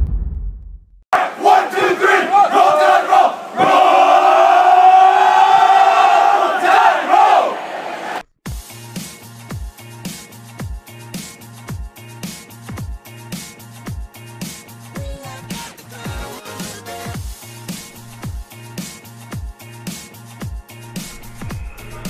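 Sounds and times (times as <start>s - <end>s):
low boom: 0.0s - 1.0s
group yell: 1.2s - 8.2s
young men shouting and chanting: 1.2s - 8.2s
electronic music with steady beat: 8.5s - 22.0s.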